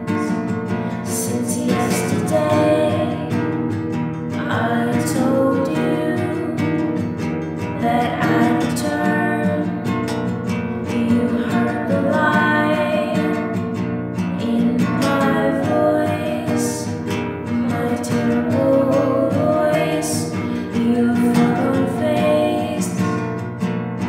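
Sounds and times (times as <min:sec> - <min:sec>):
person singing: 0:00.0 - 0:03.5, 0:04.4 - 0:07.0, 0:07.8 - 0:09.9, 0:10.8 - 0:13.5, 0:14.4 - 0:16.9, 0:17.6 - 0:23.1
acoustic guitar: 0:00.0 - 0:24.0.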